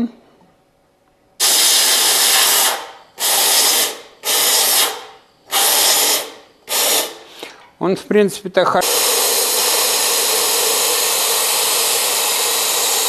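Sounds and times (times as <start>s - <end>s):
spray gun hissing: 1.4s - 7.3s, 8.8s - 13.0s.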